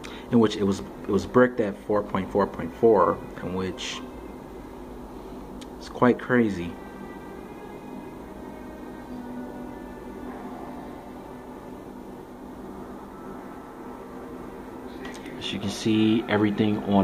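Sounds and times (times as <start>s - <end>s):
faint background music: 0.0s - 17.0s
room hum: 0.0s - 17.0s.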